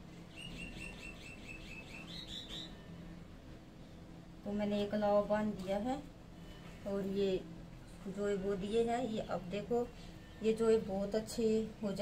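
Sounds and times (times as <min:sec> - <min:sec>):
bird chirping: 0:00.3 - 0:02.9.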